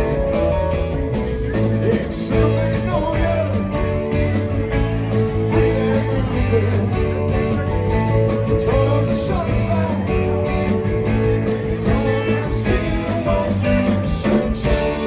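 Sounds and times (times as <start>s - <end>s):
bass: 0.0s - 15.0s
drums: 0.0s - 15.0s
electric guitars: 0.0s - 15.0s.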